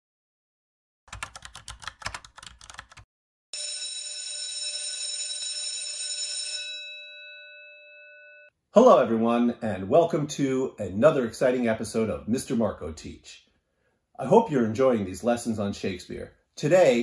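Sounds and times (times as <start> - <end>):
bell-like ring: 3.6 - 8.5.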